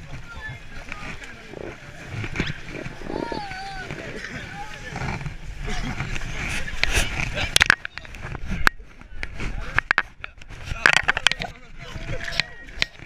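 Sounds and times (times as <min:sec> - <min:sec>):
low wind rumble: 0:00.0 - 0:13.0
people talking at once: 0:00.0 - 0:13.0
wavering cry: 0:02.7 - 0:04.3.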